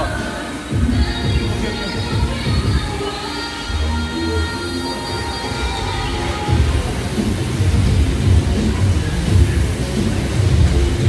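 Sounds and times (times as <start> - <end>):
air bike fan whooshing: 0.0 - 11.0
background music: 0.0 - 11.0.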